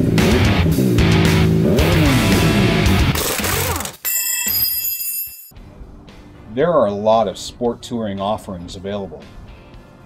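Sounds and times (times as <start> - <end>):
electric guitar rock music: 0.0 - 3.2
high metallic ringing: 4.1 - 5.6.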